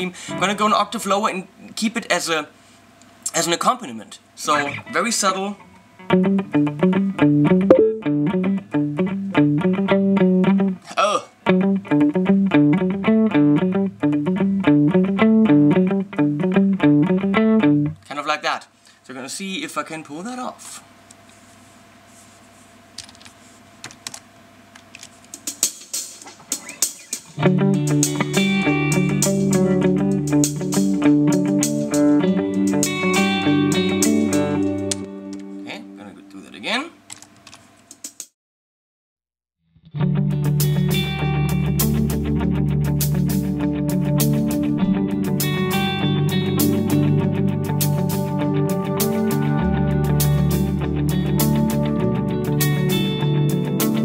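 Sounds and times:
song with electric guitar: 6.0s - 10.8s, 11.5s - 18.0s, 26.6s - 35.7s, 39.9s - 54.0s
keyboard and mouse clicks: 23.0s - 24.2s, 24.8s - 25.4s.

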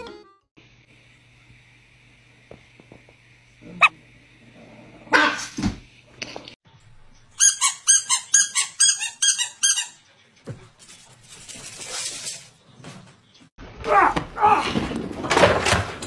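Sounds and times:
small dogs barking: 5.1s - 5.5s.

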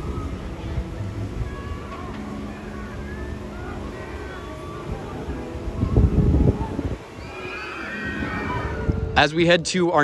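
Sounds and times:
roller coaster riders screaming: 0.0s - 9.2s.

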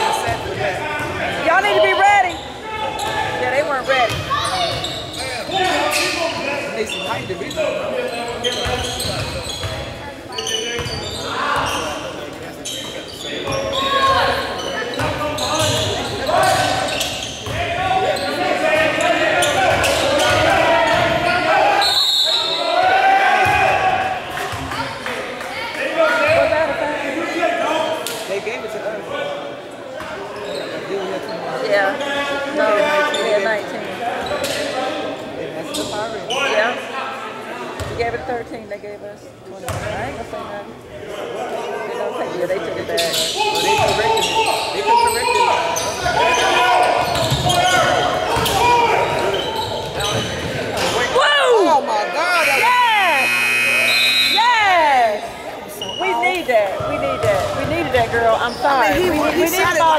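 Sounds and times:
sneakers squeaking on hardwood: 0.5s - 21.2s, 43.0s - 51.1s, 55.8s - 59.9s
basketball bouncing: 4.0s - 4.8s
basketball bouncing on court: 4.0s - 5.0s, 10.8s - 11.0s, 15.0s - 16.6s, 39.7s - 40.0s, 47.0s - 50.6s.

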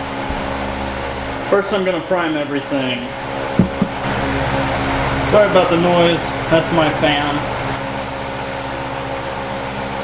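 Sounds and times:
electric fan whooshing: 0.0s - 10.0s
short knocks: 3.6s - 4.1s.

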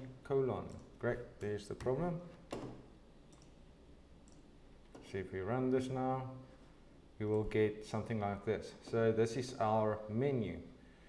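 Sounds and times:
faint mouse clicks: 4.2s - 5.0s.

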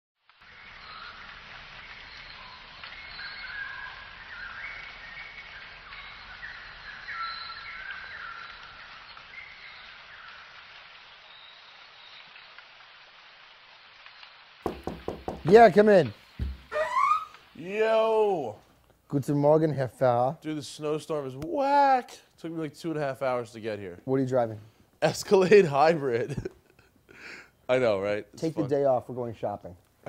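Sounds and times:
steady background hiss: 0.3s - 30.0s
high chirping bird calls: 16.2s - 17.6s.

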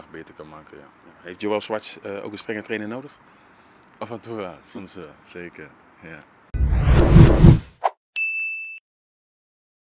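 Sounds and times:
electronic ding: 8.2s - 8.8s.

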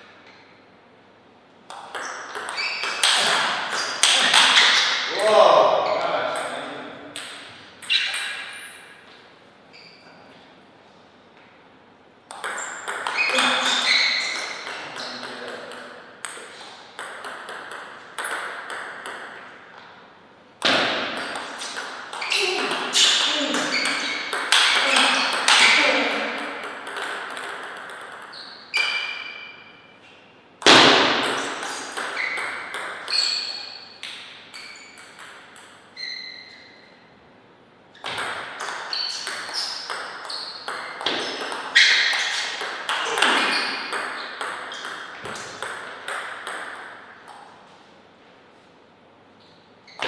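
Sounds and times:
table tennis ball clicking: 12.3s - 13.4s
loud sharp ball hit: 30.6s - 31.6s.

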